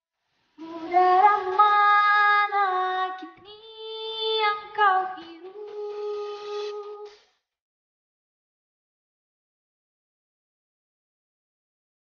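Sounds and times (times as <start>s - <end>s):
high voice singing: 0.6s - 7.2s.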